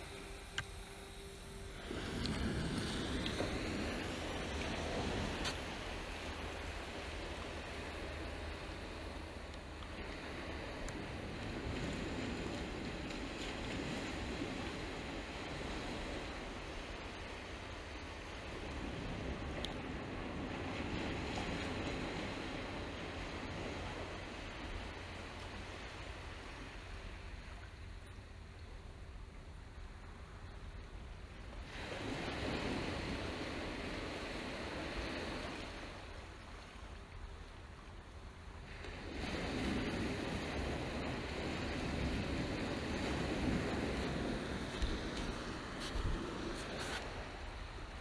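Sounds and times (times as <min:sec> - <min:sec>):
wind rumble on microphone: 0:00.0 - 0:48.0
surf breaking on sandy beach: 0:38.7 - 0:48.0.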